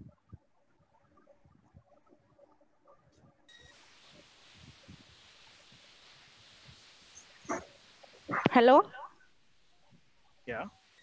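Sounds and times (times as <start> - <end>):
faint steady hiss: 3.2 - 11.0.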